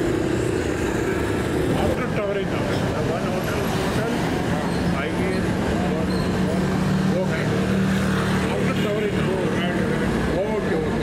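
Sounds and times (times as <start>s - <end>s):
road traffic engine hum: 0.0s - 11.0s
passers-by talking: 1.2s - 11.0s.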